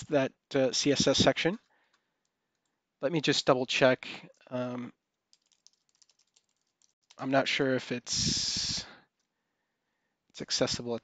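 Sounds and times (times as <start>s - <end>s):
computer keyboard clicks: 5.3s - 7.2s.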